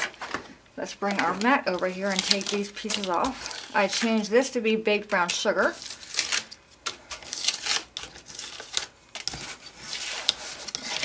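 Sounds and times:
cardstock peeling and rustling: 1.0s - 4.4s, 5.2s - 11.0s.

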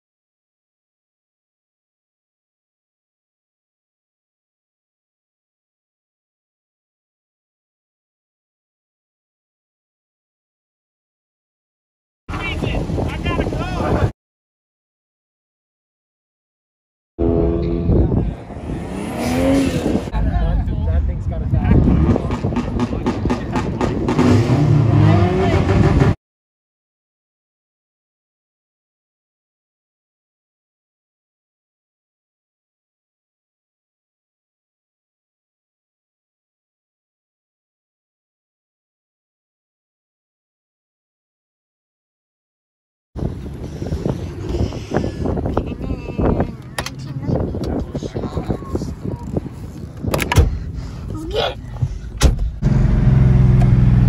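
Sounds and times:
people's voices: 12.3s - 14.1s, 17.6s - 26.2s, 43.2s - 52.5s
wind buffeting microphone: 12.3s - 14.1s, 17.5s - 24.2s, 43.2s - 52.6s
car door shutting: 50.1s - 50.7s, 51.8s - 52.6s
car engine running: 50.1s - 54.0s.

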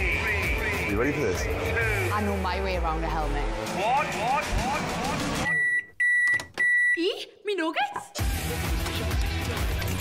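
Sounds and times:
microwave timer beeping: 5.5s - 7.0s.

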